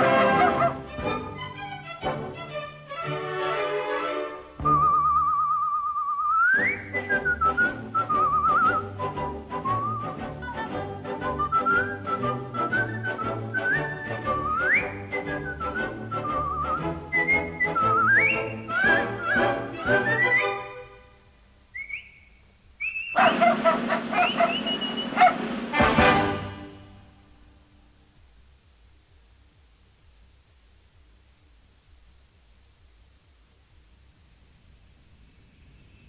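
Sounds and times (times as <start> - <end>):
whistled melody: 0.0 - 1.7, 3.6 - 20.8, 21.8 - 25.5
dog barking and yapping: 23.1 - 25.7.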